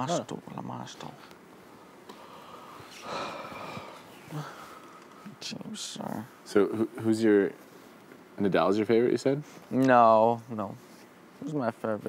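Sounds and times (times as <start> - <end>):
person exhaling: 2.2 - 4.8.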